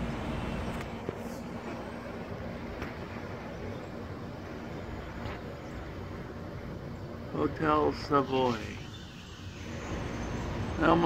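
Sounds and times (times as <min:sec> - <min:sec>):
distant city traffic rumble: 0:00.0 - 0:11.0.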